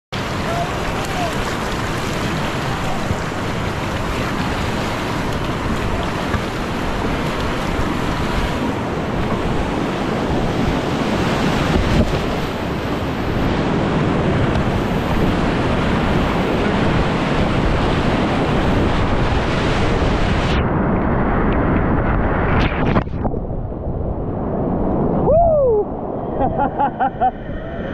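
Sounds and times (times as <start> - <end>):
water splashing: 0.2 - 13.6
whitewater rapids rushing: 0.2 - 20.5
wind buffeting microphone: 0.2 - 27.9.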